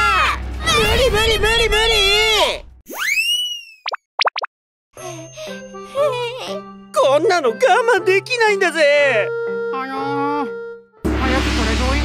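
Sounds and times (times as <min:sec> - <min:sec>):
light children's music: 0:05.0 - 0:12.0.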